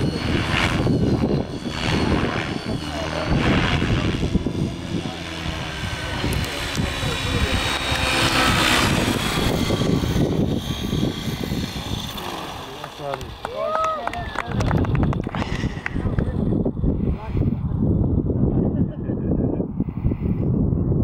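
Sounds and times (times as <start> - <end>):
high thin drivetrain whine: 0.0 - 17.2
model helicopter rotor blades swishing: 0.0 - 18.2
wind rumble on microphone: 0.0 - 21.0.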